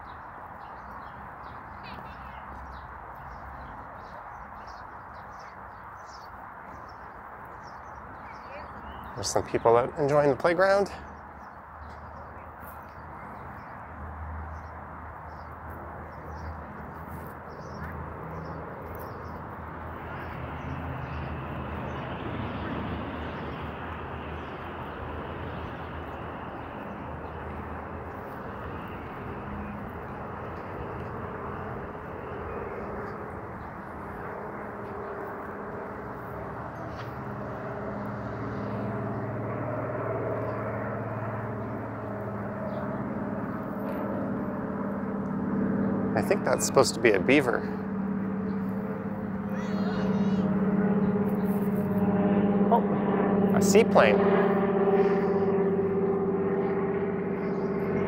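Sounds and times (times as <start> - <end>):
propeller plane engine drone: 0.0 - 58.0
traffic hum: 0.0 - 58.0.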